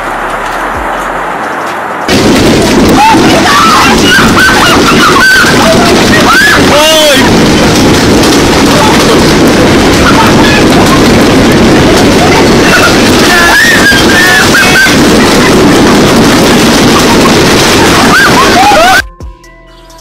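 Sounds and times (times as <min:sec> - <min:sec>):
hail pounding water and ground: 0:00.0 - 0:19.0
people exclaiming: 0:02.8 - 0:07.7, 0:08.6 - 0:19.0.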